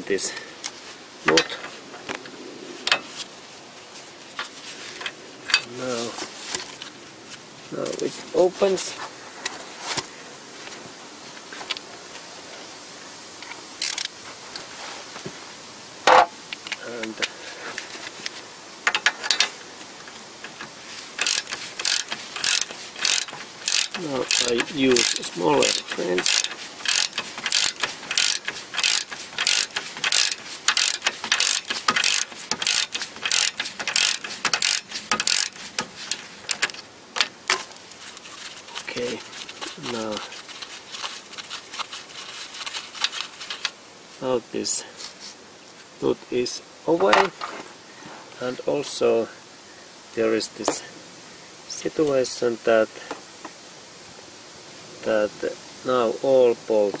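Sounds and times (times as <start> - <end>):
ratchet wrench clicking: 13.8 - 14.1, 21.2 - 37.3.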